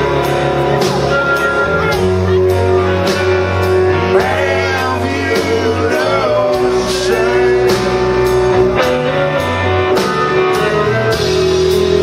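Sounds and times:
bending guitar notes: 0:00.0 - 0:12.0
blues-rock band playing: 0:00.0 - 0:12.0.

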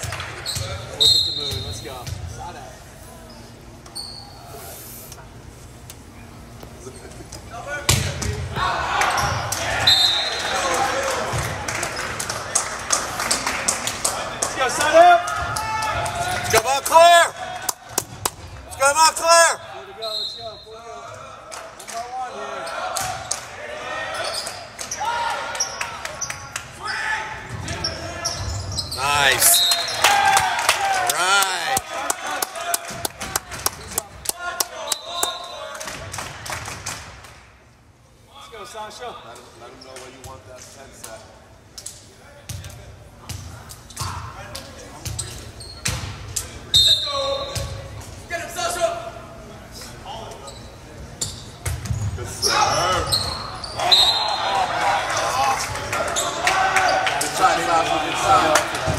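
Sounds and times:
volleyball hits: 0:07.8 - 0:11.7.

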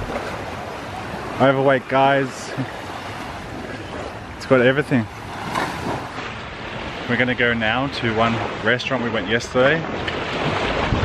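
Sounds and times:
wind on microphone: 0:00.0 - 0:01.4, 0:09.8 - 0:11.0
small waves washing onto sand: 0:00.0 - 0:11.0.

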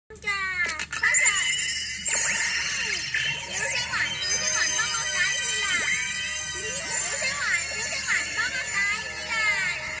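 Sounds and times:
electronic toy chirping: 0:01.0 - 0:09.1
steady high electronic tones: 0:01.2 - 0:09.3.

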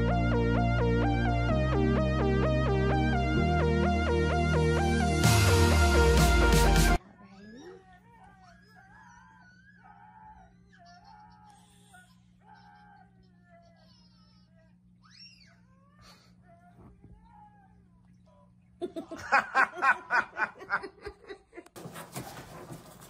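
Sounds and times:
electronic music with heavy bass: 0:00.0 - 0:07.0.

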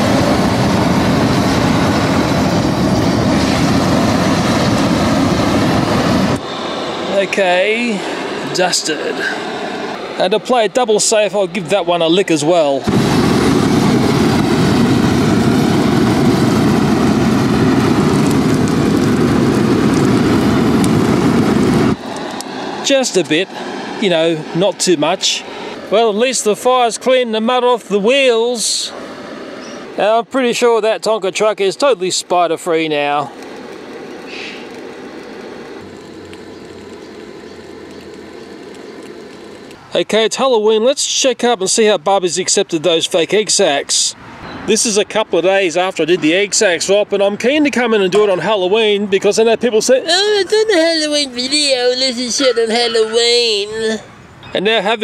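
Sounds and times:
flamethrower blast rushing: 0:00.0 - 0:40.3, 0:50.0 - 0:54.0
fire crackling hiss: 0:00.0 - 0:55.0
low hum: 0:33.2 - 0:39.9.

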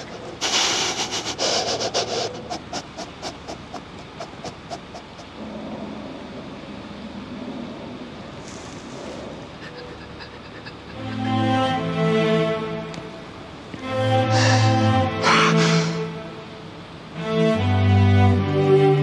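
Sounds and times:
man breathing heavily: 0:00.0 - 0:05.6, 0:09.1 - 0:12.0, 0:13.9 - 0:16.1.

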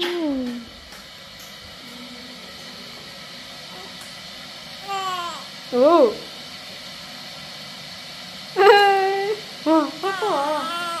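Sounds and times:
newborn baby crying: 0:10.0 - 0:11.0.

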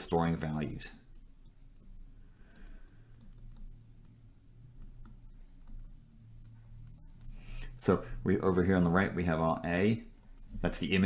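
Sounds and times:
low hum: 0:00.9 - 0:10.9.

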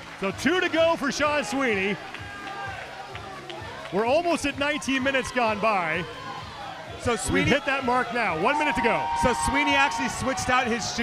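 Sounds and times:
background music with low beat: 0:00.0 - 0:11.0
faint crowd voices: 0:00.0 - 0:11.0.

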